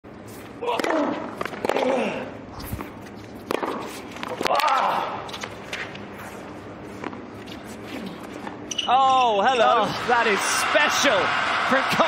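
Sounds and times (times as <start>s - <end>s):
tennis ball struck by rackets: 3.4s - 4.7s.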